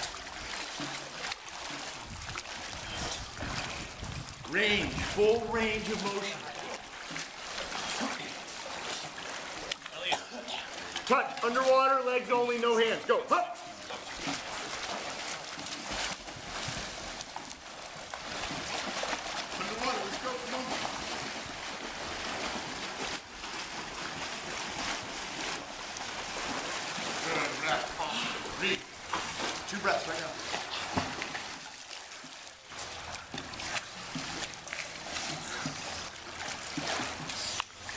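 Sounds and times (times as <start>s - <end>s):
water splashing from kicking legs: 0.0s - 37.9s.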